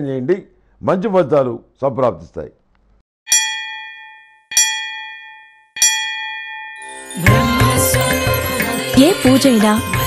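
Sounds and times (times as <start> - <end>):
bell ringing: 3.3 - 10.0.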